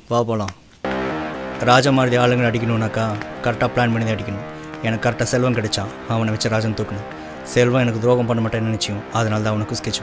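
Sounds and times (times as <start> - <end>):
music backing: 0.8 - 10.0.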